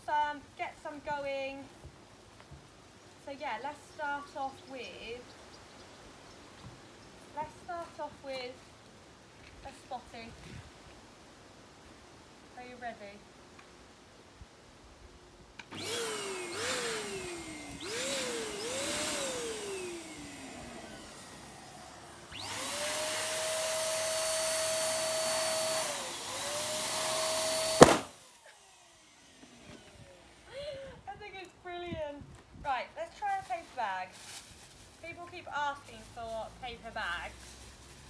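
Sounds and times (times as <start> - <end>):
electric balloon pump motor: 15.6 - 30.4
balloon bursting with loud pop: 27.7 - 28.2.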